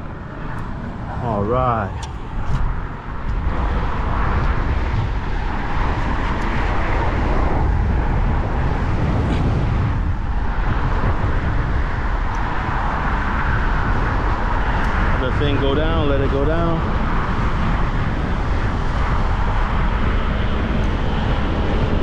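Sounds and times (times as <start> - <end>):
road noise from vehicles: 0.0 - 22.0
wind rumbling on microphone: 0.0 - 22.0.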